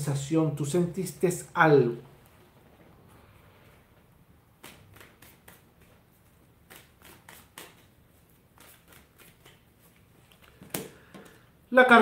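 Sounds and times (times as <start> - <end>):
cards being handled: 4.6 - 11.5.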